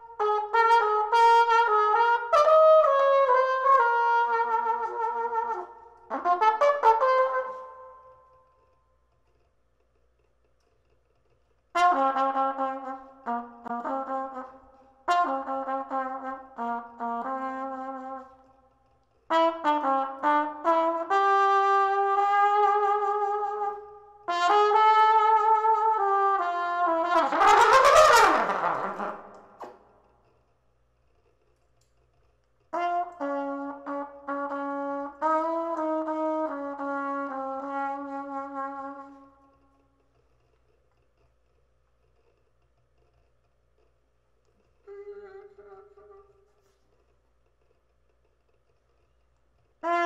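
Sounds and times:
solo trumpet phrases: 0.0s - 8.1s, 11.8s - 18.4s, 19.3s - 29.8s, 32.8s - 39.3s.

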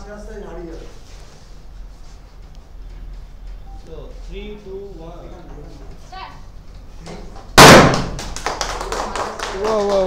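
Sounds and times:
confetti popper bang: 7.6s - 8.4s
sharp claps and clicks: 7.9s - 10.0s.

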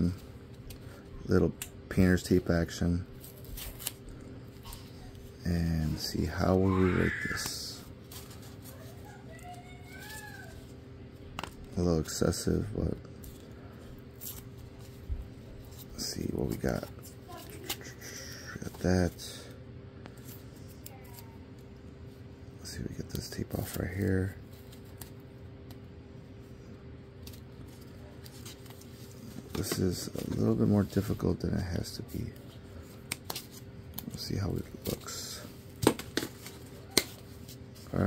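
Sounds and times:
faint steady hum: 0.0s - 38.0s
paper and tape handling: 3.2s - 5.2s, 7.3s - 11.8s, 13.1s - 18.9s, 24.4s - 25.9s, 27.2s - 31.3s, 32.1s - 38.0s.

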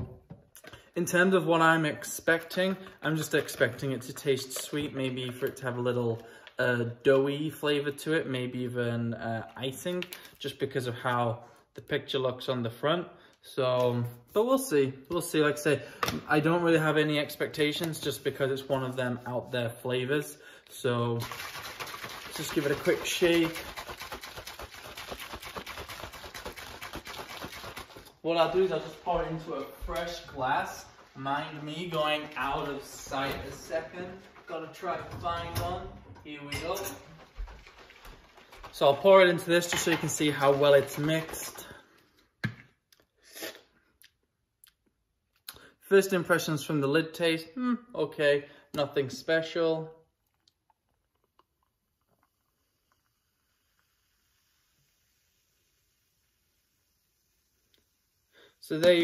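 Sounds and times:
shaker bottle sloshing: 21.0s - 41.8s.

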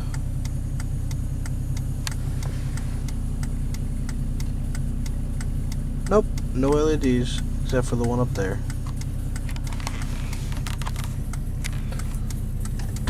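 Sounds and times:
light even ticking: 0.0s - 13.0s
truck engine humming: 0.0s - 13.0s.

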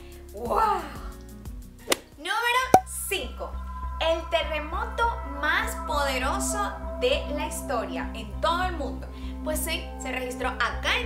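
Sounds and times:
background music with low tones: 0.0s - 11.0s.

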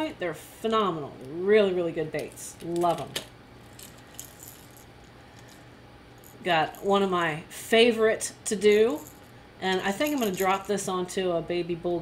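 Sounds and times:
fishing lure rattling: 3.6s - 5.6s, 9.9s - 10.8s.

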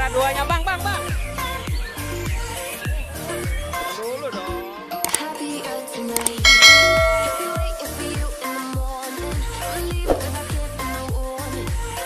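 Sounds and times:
background music with steady beat: 0.0s - 12.0s
bright bell ding: 6.5s - 8.2s.

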